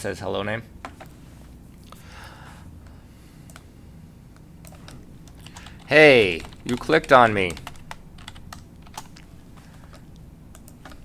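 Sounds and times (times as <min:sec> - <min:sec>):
low background hum: 0:00.0 - 0:11.0
light keyboard keystrokes: 0:04.6 - 0:11.0.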